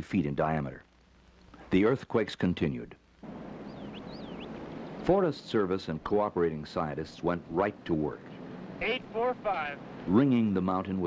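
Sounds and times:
wind: 1.5 - 11.0.

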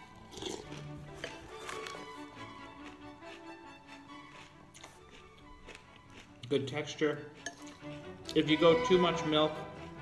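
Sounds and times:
background music held tones: 0.0 - 10.0
cereal being chewed: 0.0 - 10.0.

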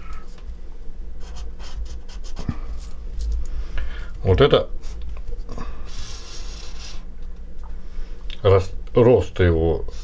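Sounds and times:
steady low hum: 0.0 - 10.0
marker scratching on paper: 1.2 - 2.5.

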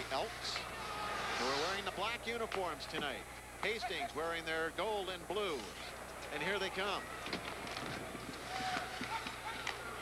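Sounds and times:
crowd murmur: 5.6 - 10.0
sticks and skates on ice: 7.3 - 9.9.

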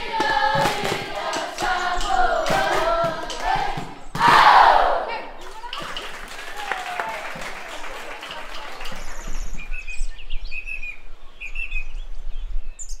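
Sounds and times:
birds chirping: 8.0 - 13.0.

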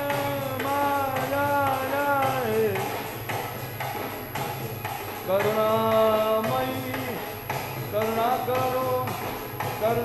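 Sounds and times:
person singing devotional song: 0.0 - 3.1, 5.2 - 7.3, 7.9 - 10.0
percussion beats: 0.0 - 10.0.

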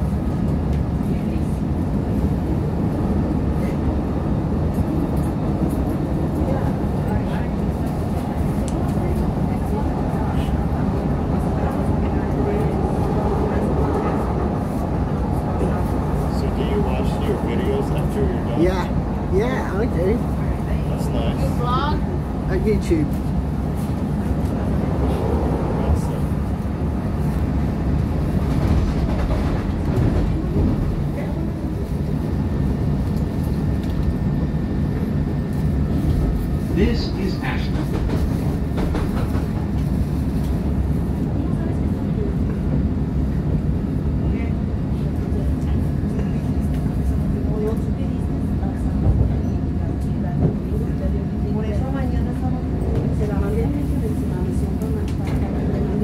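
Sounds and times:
train wheels on rails: 22.9 - 56.0.

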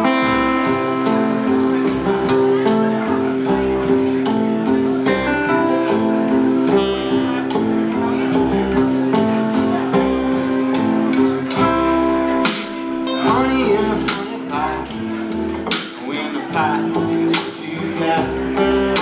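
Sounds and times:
slide guitar held notes: 0.0 - 19.0
strummed acoustic guitar: 0.0 - 19.0
upright bass line: 0.0 - 19.0.

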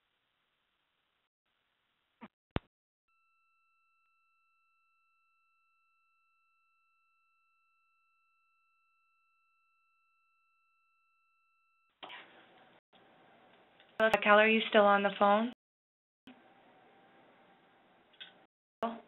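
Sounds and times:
two-note electronic tone: 3.1 - 12.0.

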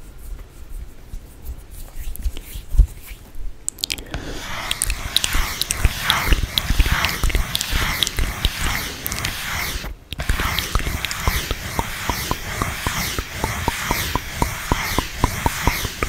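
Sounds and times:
mouth clicks and smacks: 3.6 - 16.0.

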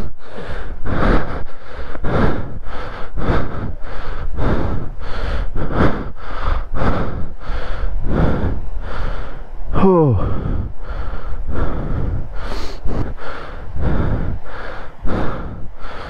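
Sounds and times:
person breathing hard: 0.0 - 16.0
steady low rumble: 0.0 - 16.0.

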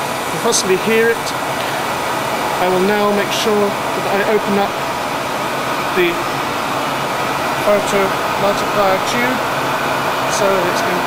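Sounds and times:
rushing air and machine noise: 0.0 - 11.0.

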